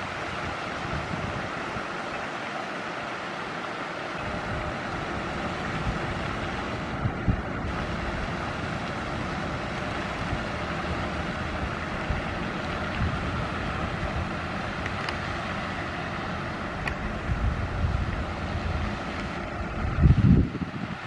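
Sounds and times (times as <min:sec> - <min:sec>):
wind buffeting microphone: 0:00.0 - 0:02.1, 0:04.2 - 0:21.0.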